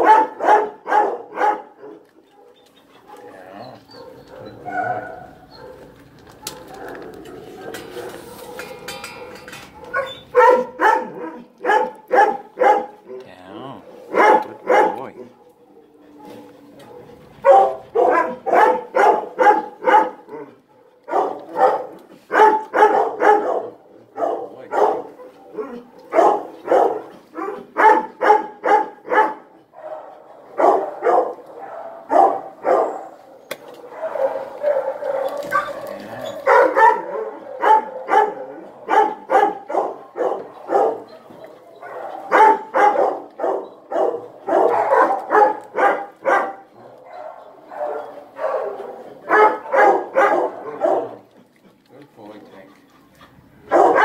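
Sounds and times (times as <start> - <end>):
dogs barking: 0.0 - 51.6, 53.6 - 54.0.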